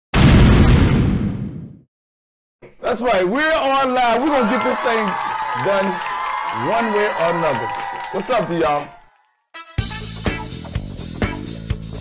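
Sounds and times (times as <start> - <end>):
explosion boom: 0.1 - 1.8.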